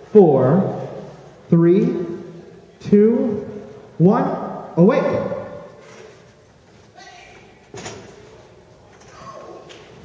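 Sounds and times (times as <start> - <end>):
amplified word echoing in hall: 0.0 - 5.9.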